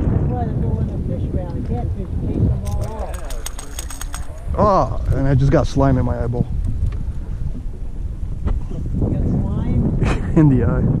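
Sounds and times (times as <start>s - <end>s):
wind rumble on microphone: 0.0s - 11.0s
faint voices: 0.4s - 6.5s
fast sharp clicks: 2.6s - 4.6s.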